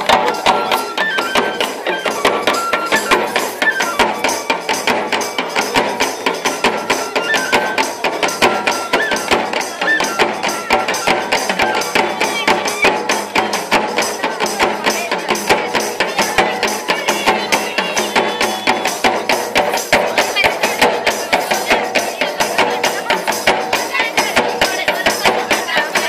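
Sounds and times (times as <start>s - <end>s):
folk dance music: 0.0s - 26.0s.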